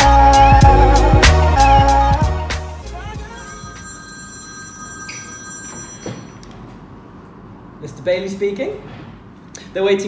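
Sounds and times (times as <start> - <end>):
desk telephone ringing: 3.2 - 6.7.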